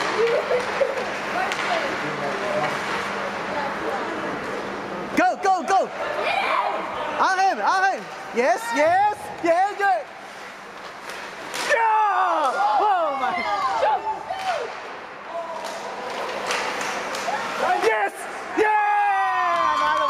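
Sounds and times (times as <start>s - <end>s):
hockey sticks and puck knocking: 0.0s - 2.0s, 10.4s - 12.8s, 15.5s - 18.0s
players hitting the boards: 10.8s - 12.9s, 14.3s - 17.9s
spectators shouting: 17.2s - 20.0s.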